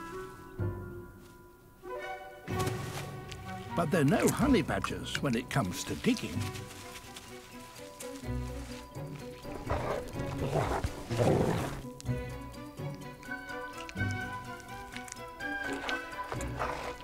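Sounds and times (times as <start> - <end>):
background music with held notes: 0.0 - 17.0
animal digging and snuffling: 5.4 - 17.0.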